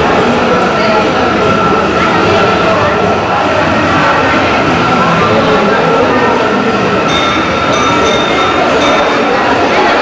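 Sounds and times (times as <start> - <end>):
steady droning tones: 0.0 - 10.0
ringing metallic clinks: 7.1 - 10.0.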